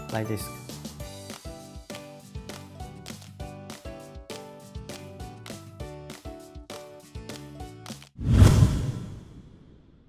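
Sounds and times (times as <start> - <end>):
whoosh with deep boom: 8.2 - 10.0.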